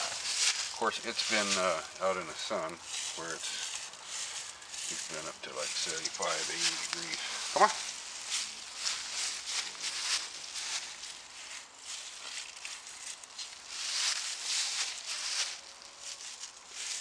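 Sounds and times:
footsteps crunching dry leaves: 0:00.0 - 0:17.0.

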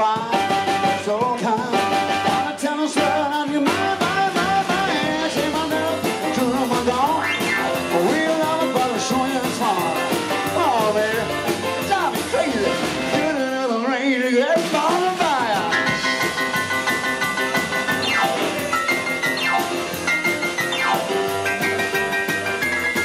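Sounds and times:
drum kit beat: 0:00.0 - 0:23.0
electric guitar: 0:00.0 - 0:23.0.

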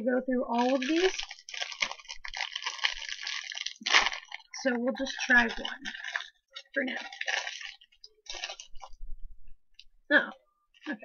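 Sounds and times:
plastic bag crinkling: 0:00.4 - 0:09.0.

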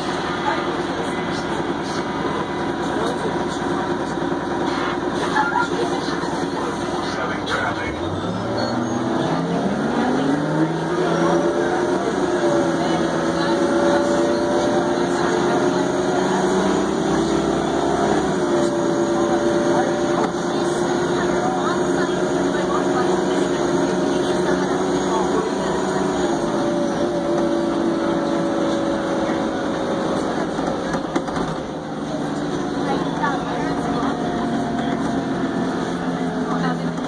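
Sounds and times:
bus diesel engine whine: 0:00.0 - 0:37.0.

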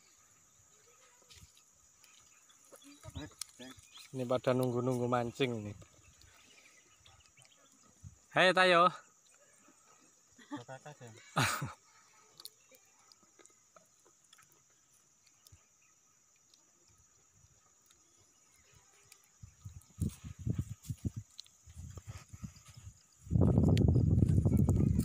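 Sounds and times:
faint outdoor background: 0:00.0 - 0:25.0
loud low rumbling on microphone: 0:23.3 - 0:25.0.

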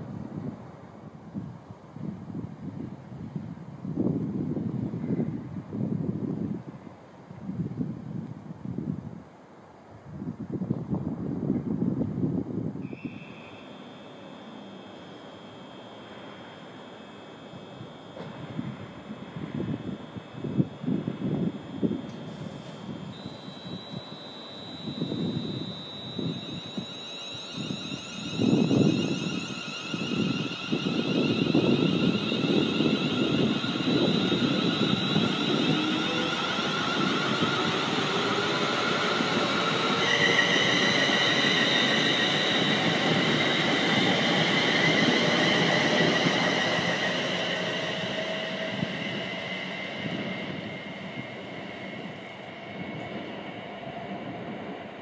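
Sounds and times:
electric train motor whine: 0:11.2 - 0:55.0
train wheels rumbling on track: 0:20.8 - 0:55.0.

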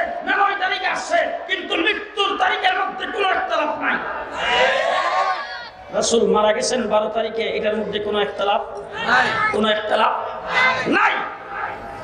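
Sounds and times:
man's amplified raised voice: 0:00.0 - 0:04.2, 0:05.8 - 0:11.8.

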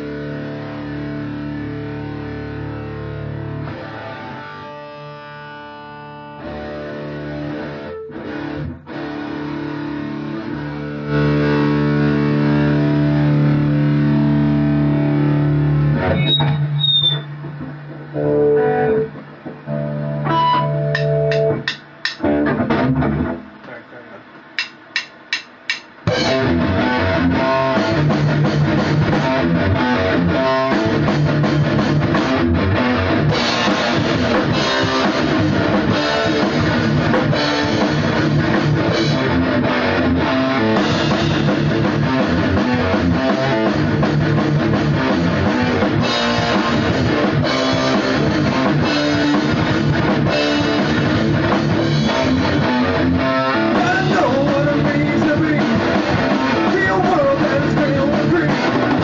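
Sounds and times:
distorted electric guitar: 0:00.0 - 0:59.0
metalcore band playing: 0:06.4 - 0:16.5, 0:17.4 - 0:23.4, 0:24.6 - 0:59.0.

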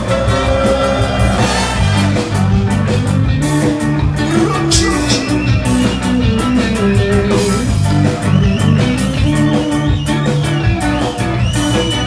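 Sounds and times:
drum kit: 0:00.0 - 0:12.0
electric guitar: 0:00.0 - 0:12.0
ska band playing live: 0:00.0 - 0:12.0.

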